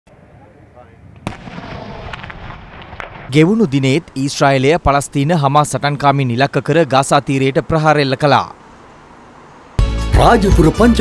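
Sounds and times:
explosion with rumble: 1.1 - 3.4.

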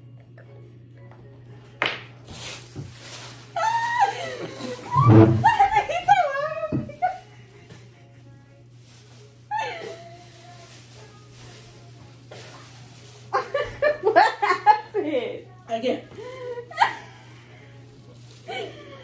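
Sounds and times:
woman laughing hard: 3.6 - 7.3, 9.5 - 10.3, 13.3 - 15.0, 16.2 - 17.3, 18.5 - 19.0.

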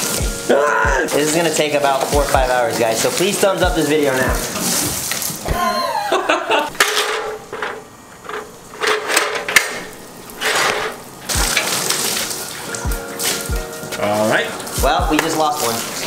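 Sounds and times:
background music: 0.0 - 4.8, 11.3 - 16.0
garden hose water hissing: 0.0 - 5.7, 9.8 - 16.0.

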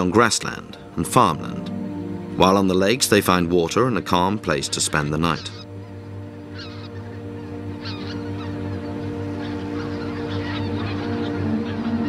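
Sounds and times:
geese honking: 0.0 - 12.0
low background music: 0.0 - 12.0.

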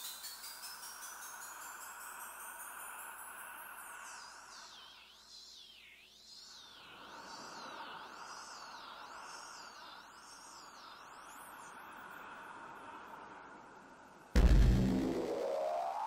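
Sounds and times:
sweeping synthesizer tone: 14.4 - 16.0.

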